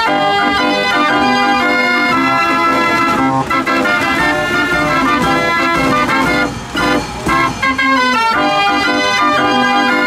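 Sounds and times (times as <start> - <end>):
fairground organ chords: 0.0 - 10.0.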